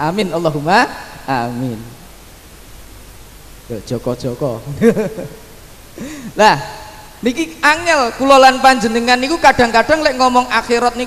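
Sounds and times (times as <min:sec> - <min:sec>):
man talking: 0:00.0 - 0:02.0, 0:03.7 - 0:05.2, 0:06.3 - 0:11.0
steady background hiss: 0:00.0 - 0:11.0.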